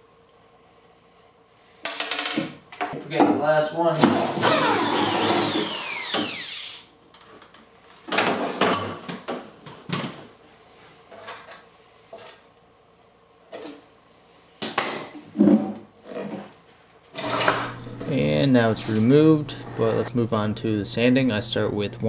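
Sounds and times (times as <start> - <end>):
cordless drill whine: 4.4 - 6.9, 17.2 - 20.0.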